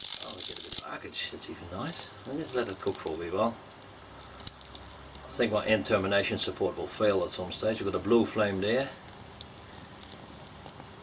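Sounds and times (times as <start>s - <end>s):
faint crackles: 0.0s - 6.0s, 8.1s - 11.0s
faint electrical hiss: 0.0s - 11.0s.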